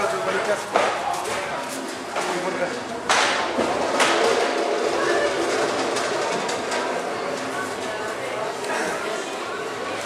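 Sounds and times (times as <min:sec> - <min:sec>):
indistinct voices in echoing hall: 0:00.0 - 0:10.0.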